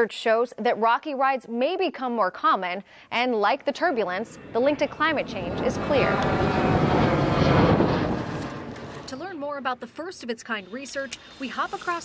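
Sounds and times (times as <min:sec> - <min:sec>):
jet airliner rushing noise: 0:04.0 - 0:09.3.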